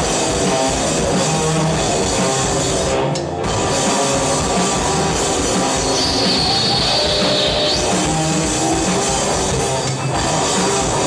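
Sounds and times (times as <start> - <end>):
bass guitar: 0.0 - 11.0
drum kit: 0.0 - 11.0
electric guitars: 0.0 - 11.0.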